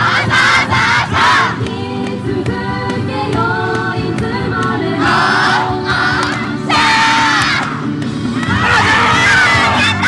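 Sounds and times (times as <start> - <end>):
crowd shouting in unison: 0.0 - 1.6, 5.0 - 7.8, 8.4 - 10.0
dance music: 0.0 - 10.0.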